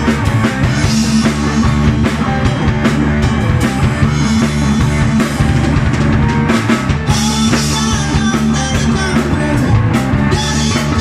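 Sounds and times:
bass guitar: 0.0 - 11.0
drum kit: 0.0 - 11.0
electric guitar: 0.0 - 11.0
man singing into a microphone: 7.1 - 11.0.

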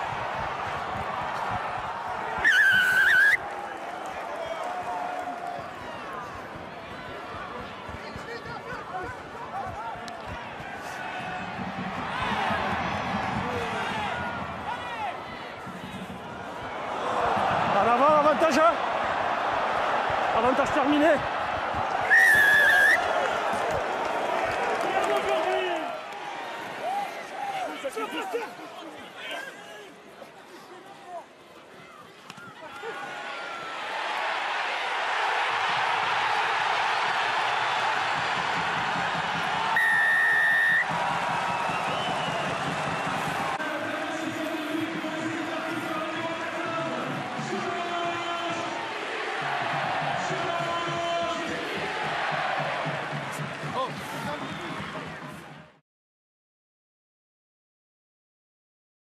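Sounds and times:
stadium crowd noise: 0.0 - 55.8
referee's whistle blast: 2.4 - 3.4, 39.8 - 40.9.

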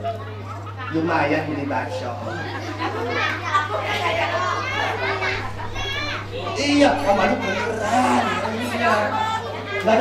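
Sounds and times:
children shouting and chattering: 0.0 - 10.0.

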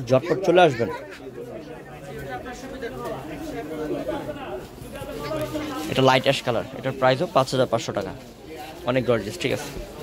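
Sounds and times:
background chatter of voices: 0.0 - 10.0.

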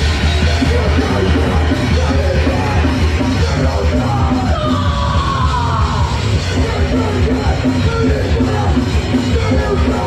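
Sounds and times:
punk rock band playing live: 0.0 - 10.0.

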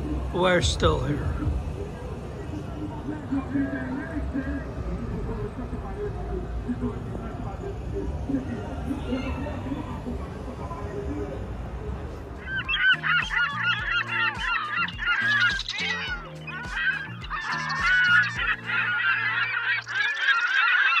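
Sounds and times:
music with steady bass beat: 0.0 - 2.2, 12.4 - 20.0
low harbour rumble: 0.0 - 13.9
goose-like honking calls: 12.4 - 21.0.

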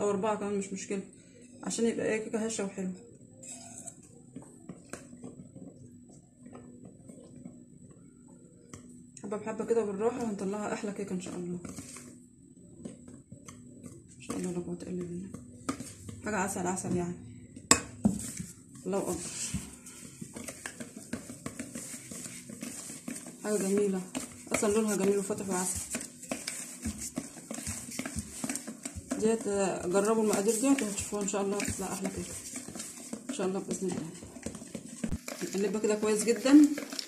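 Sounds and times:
low steady hum: 0.0 - 35.1
utensil stirring batter in bowl: 2.5 - 16.9, 17.6 - 37.0.

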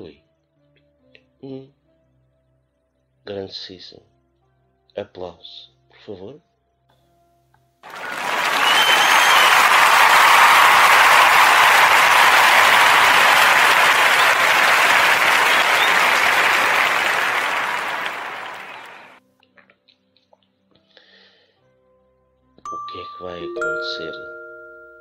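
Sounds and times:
crowd applause: 7.8 - 19.2.

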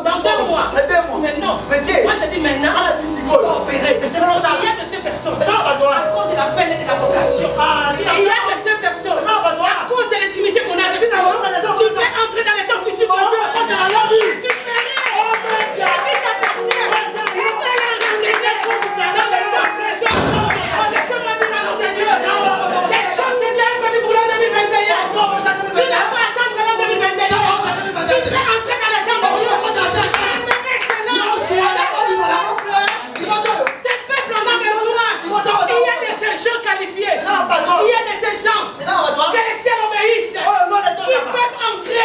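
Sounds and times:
loud voices: 1.6 - 36.4
hand clapping: 13.6 - 19.0.

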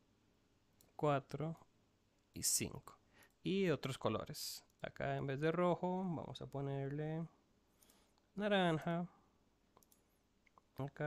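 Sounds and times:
man talking: 1.0 - 1.7, 2.3 - 7.4, 8.3 - 9.2, 10.7 - 11.0
computer mouse clicks: 9.7 - 10.6.

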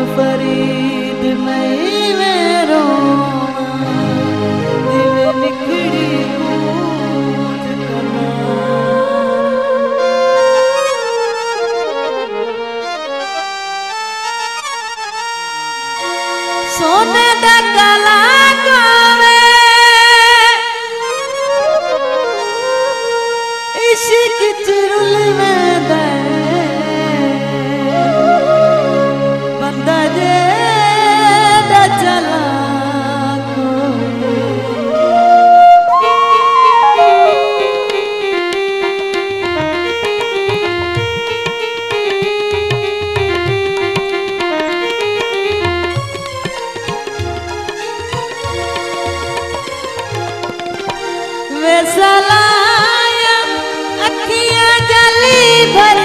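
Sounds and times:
harmonium playing held notes: 0.0 - 56.0
keyboard: 0.0 - 56.0
bamboo flute: 21.4 - 23.4, 28.0 - 29.6, 34.7 - 38.6.

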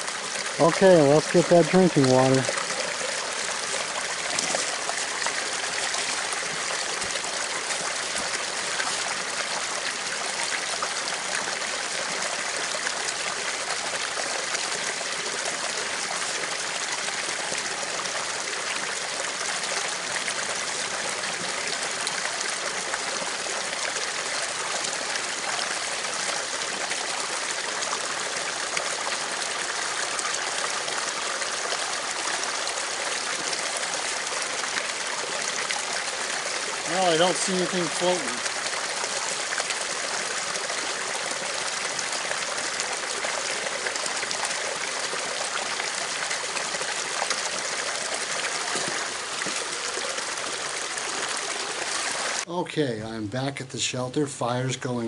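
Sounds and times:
creek trickling over rocks: 0.0 - 52.5.

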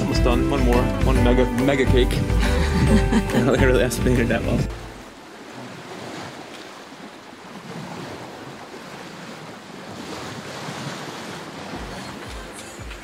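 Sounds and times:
ocean waves rushing: 2.2 - 13.0.

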